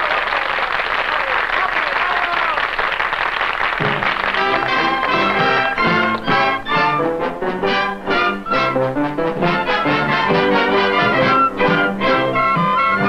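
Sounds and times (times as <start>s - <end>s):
dance band playing swing: 2.8s - 13.0s
trumpets and trombones: 3.8s - 13.0s.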